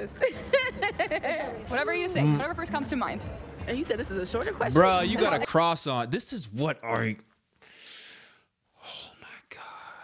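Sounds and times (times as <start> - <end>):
man whispering: 8.7 - 10.0.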